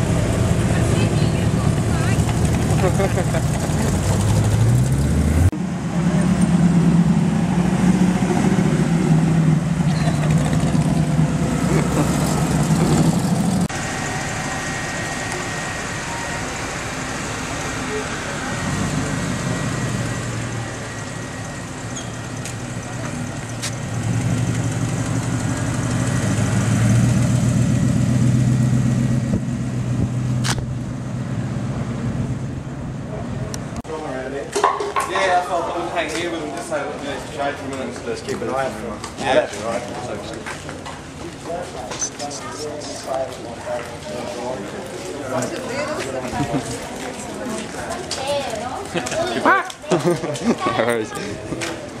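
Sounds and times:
hot rod engine running: 0.0 - 33.8.

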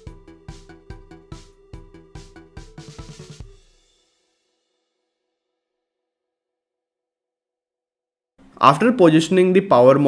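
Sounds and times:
drum kit beat with cymbals: 0.0 - 5.0.

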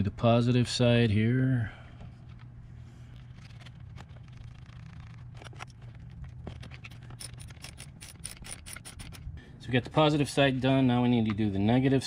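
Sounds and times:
socket ratchet clicking: 6.6 - 9.3.

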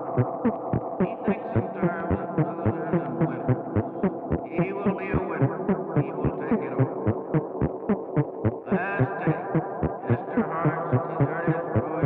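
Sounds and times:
dense hum: 0.0 - 12.0
throbbing processed speech pulse: 0.0 - 12.0.

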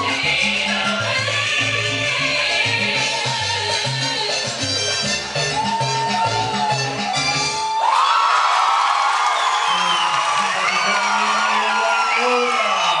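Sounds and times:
salsa music: 0.0 - 7.9, 9.4 - 13.0
crowd cheering: 5.4 - 13.0.

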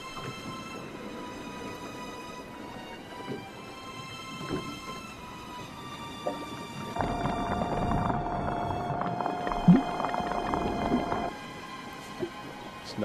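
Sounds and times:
hiss and steady hum: 7.0 - 11.3.

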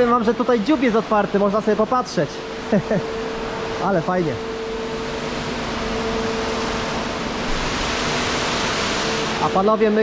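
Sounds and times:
ship machinery hum: 0.0 - 10.0
ventilation hiss: 0.0 - 10.0.

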